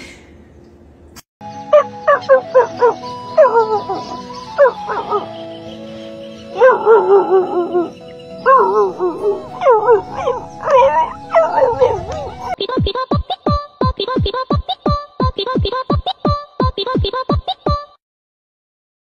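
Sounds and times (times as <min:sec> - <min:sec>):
background music with held notes: 0:01.4 - 0:12.6
dogs barking and yelping: 0:01.7 - 0:05.4, 0:06.4 - 0:12.6.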